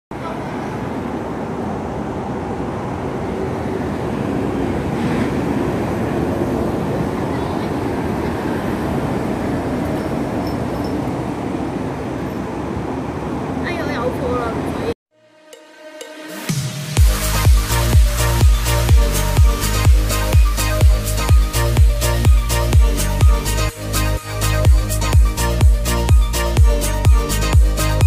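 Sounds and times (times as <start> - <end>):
traffic tyre and engine noise: 0.1 - 15.0.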